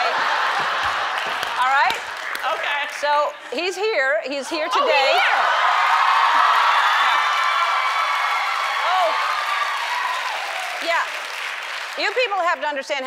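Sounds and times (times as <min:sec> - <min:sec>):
audience applauding and cheering: 0:00.0 - 0:03.2, 0:04.9 - 0:12.6.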